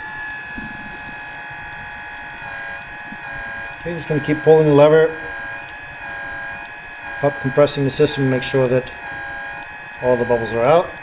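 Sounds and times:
electric pump whining: 0.0 - 11.0.

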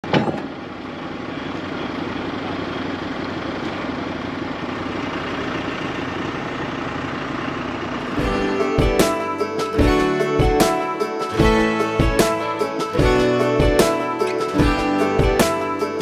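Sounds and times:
engine idling: 0.3 - 16.0.

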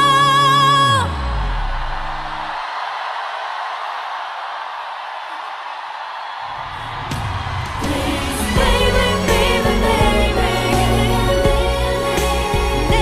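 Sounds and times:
pop song with band: 0.0 - 1.4, 7.7 - 13.0
person singing: 0.0 - 1.5, 7.8 - 13.0.

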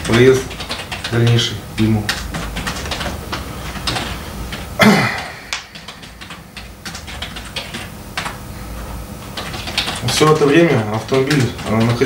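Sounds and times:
low room hum: 0.0 - 12.0.

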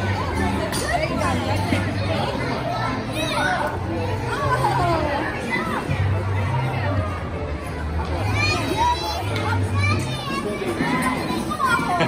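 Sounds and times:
children's voices: 0.0 - 7.0, 7.8 - 12.0
people talking: 0.0 - 12.0.

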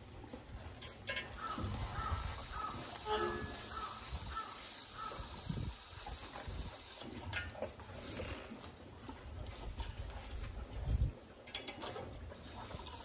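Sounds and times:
cow shuffling in straw: 1.7 - 5.2, 7.9 - 11.1.

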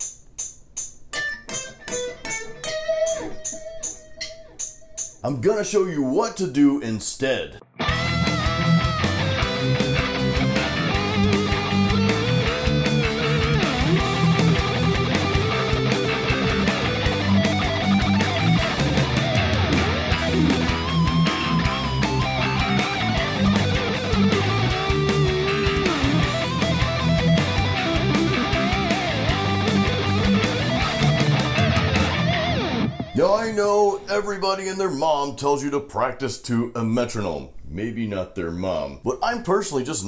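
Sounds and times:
metronome clicking: 0.0 - 5.2
electric guitar lead line: 1.5 - 5.0, 7.6 - 33.4
heavy metal backing band: 7.8 - 33.3.

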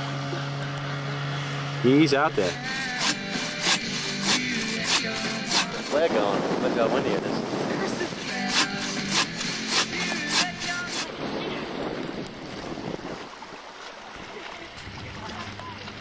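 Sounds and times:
small boat outboard motor: 0.0 - 16.0
sharp beat: 2.4 - 6.0, 8.2 - 11.1
wind noise on microphone: 2.5 - 13.6, 14.8 - 16.0.

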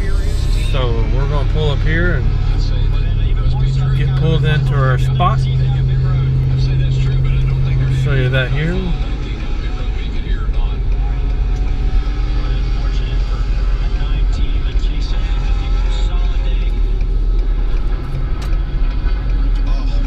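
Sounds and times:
road and engine rumble: 0.0 - 20.0.

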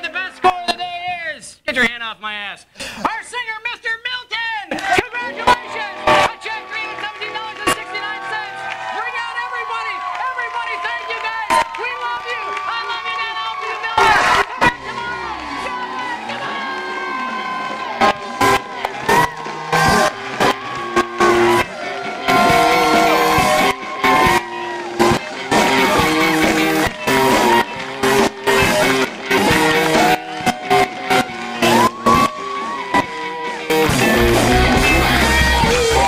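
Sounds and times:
guitar band music: 4.7 - 36.0.

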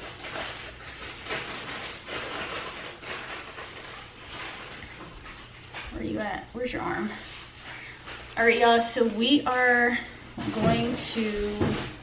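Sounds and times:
fabric rustling: 0.0 - 6.2.

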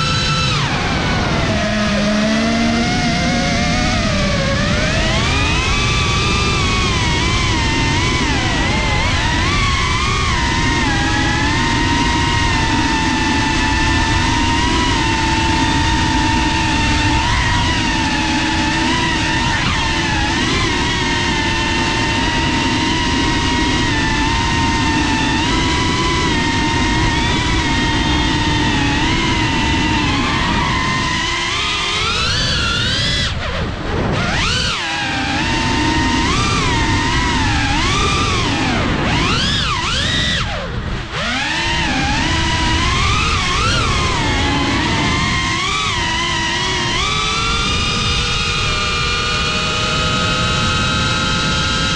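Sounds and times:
quadcopter motors whining: 0.0 - 51.9.

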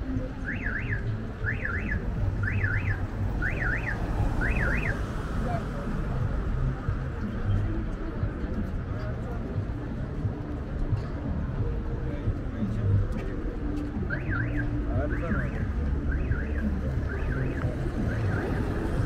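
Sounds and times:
street traffic rumble: 0.0 - 19.0
car alarm whooping: 0.5 - 5.0, 14.1 - 18.6.

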